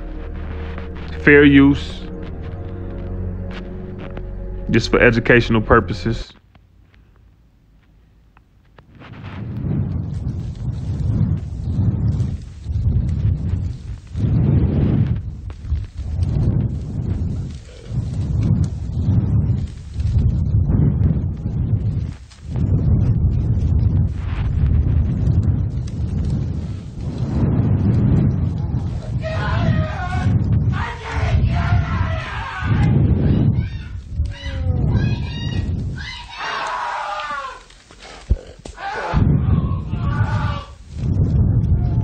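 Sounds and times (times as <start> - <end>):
loud distorted low rumbling: 0.0 - 6.4, 9.2 - 36.2.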